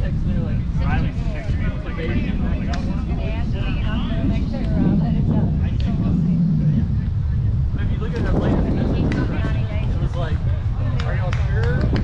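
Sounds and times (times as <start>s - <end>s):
distant indistinct voices: 0.0s - 12.0s
wind rumble on microphone: 0.0s - 12.0s.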